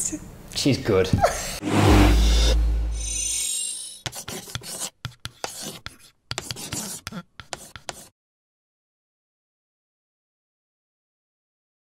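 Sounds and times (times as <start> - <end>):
chalk scratching on blackboard: 3.8 - 8.1.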